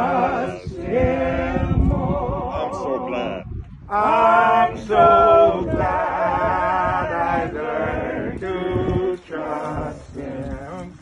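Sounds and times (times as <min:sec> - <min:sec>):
voices singing a hymn: 0:00.0 - 0:11.0.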